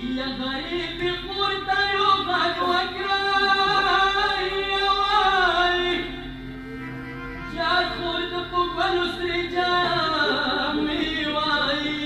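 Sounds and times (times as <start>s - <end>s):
solo voice singing a lament: 0.0s - 6.4s, 7.5s - 12.0s
instrumental accompaniment: 0.0s - 12.0s.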